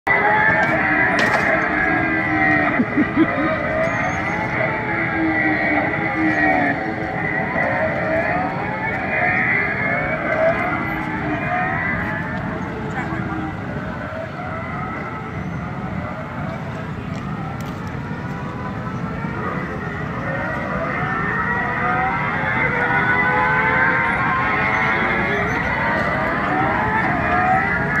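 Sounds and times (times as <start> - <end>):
go-kart motors droning: 0.1 - 28.0.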